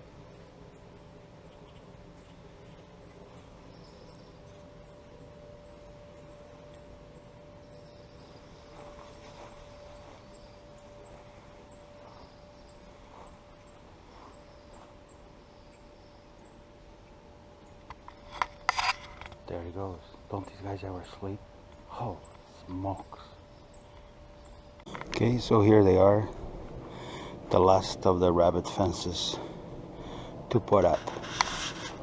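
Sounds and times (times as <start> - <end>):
faint high ticks and chirps: 0.0 - 26.3
faint steady hum: 0.0 - 32.0.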